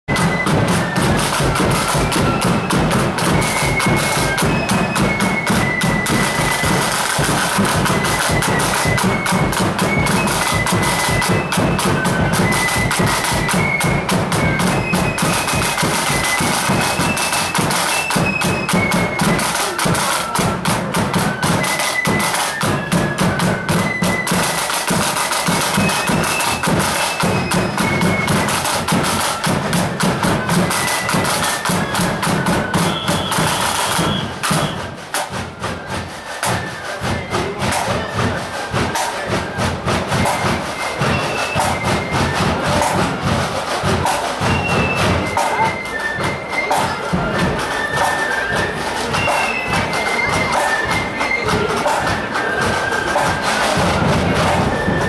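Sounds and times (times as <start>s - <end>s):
side drums: 0.0s - 55.0s
bass drum beating march: 0.1s - 55.0s
flutes playing high melody: 0.1s - 55.0s.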